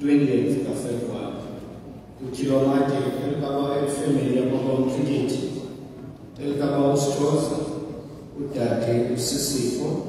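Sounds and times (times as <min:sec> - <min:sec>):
man speaking into a microphone: 0:00.0 - 0:05.8, 0:06.4 - 0:10.0.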